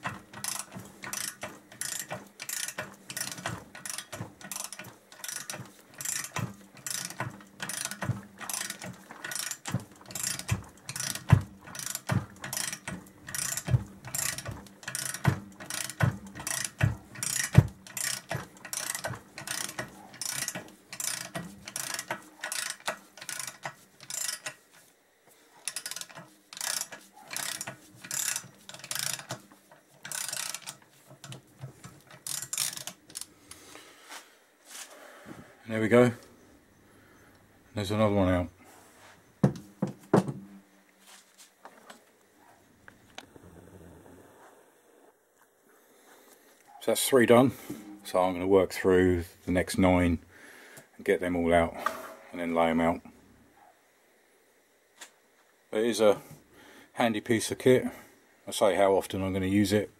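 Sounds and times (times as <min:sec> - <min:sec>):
ratchet wrench clicking: 0:00.0 - 0:24.6, 0:25.6 - 0:29.4, 0:30.0 - 0:33.3
sharp knocks: 0:39.4 - 0:40.5.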